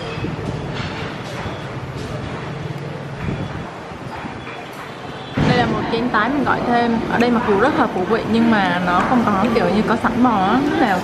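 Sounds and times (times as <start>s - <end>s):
murmur of diners' voices: 0.0s - 11.0s.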